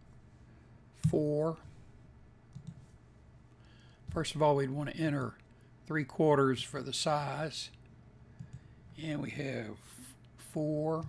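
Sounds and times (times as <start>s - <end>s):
low room hiss: 0.0s - 11.0s
computer mouse clicks: 2.5s - 2.8s, 8.4s - 8.7s.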